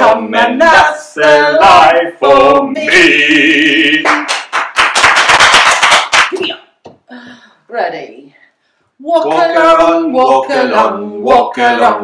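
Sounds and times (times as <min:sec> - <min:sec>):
people clapping: 0:04.0 - 0:06.6.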